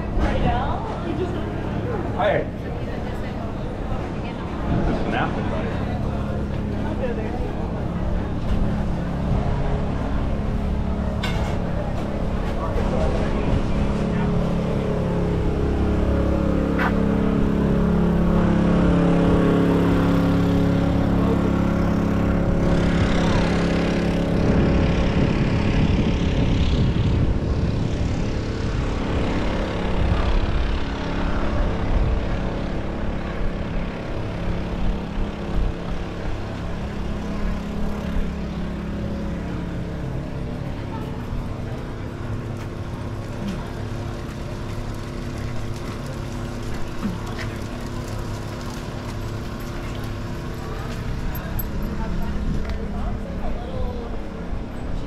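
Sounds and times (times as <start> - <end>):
passing traffic: 0.0 - 55.0
street din: 0.0 - 55.0
vehicle engine running: 0.0 - 55.0.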